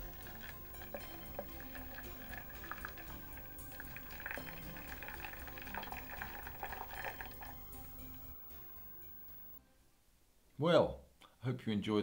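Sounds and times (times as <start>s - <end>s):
water pouring and splashing: 0.0s - 8.3s
water trickling into bowl: 0.0s - 9.6s.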